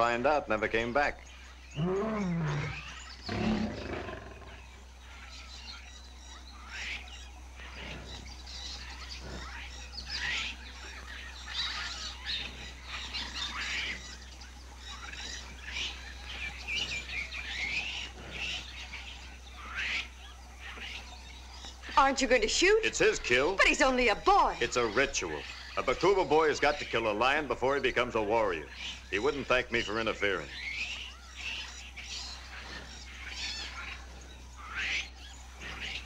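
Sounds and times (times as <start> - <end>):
bird chirps and calls: 0.0 - 36.0
low steady hum: 0.0 - 36.0
lion calling: 1.4 - 5.3, 6.6 - 36.0.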